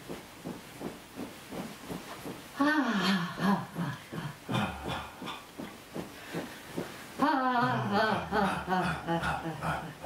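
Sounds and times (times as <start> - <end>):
breathy voiced pulses: 2.6 - 5.7, 7.2 - 10.0
person voicing falling ah: 7.2 - 10.0.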